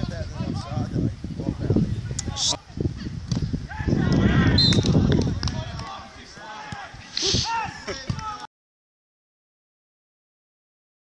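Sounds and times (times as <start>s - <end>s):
voices shouting: 3.6s - 8.5s.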